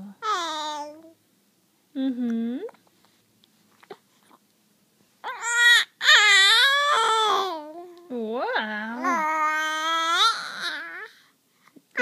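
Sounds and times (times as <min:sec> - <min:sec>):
baby squealing: 0:05.2 - 0:07.6.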